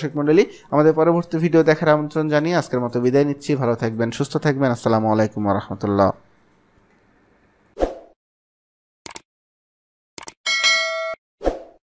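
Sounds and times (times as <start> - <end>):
bright bell ding: 10.5 - 11.2.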